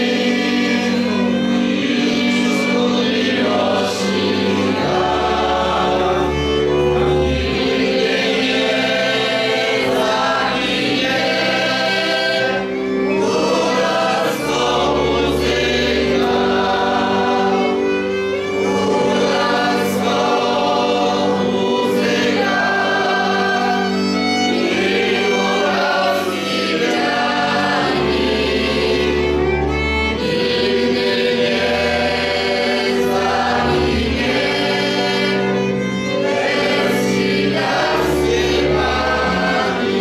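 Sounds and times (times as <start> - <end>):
double bass: 0.0 - 24.5, 26.5 - 40.0
fiddles playing: 0.0 - 40.0
group of voices singing: 0.0 - 40.0.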